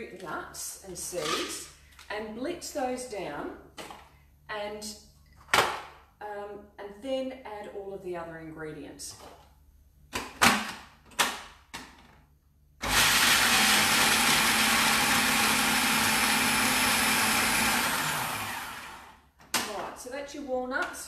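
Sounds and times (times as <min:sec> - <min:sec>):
food processor motor running: 0:12.8 - 0:19.2.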